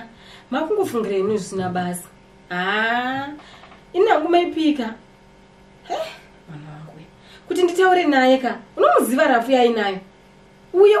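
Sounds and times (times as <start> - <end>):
woman humming: 5.8 - 7.1.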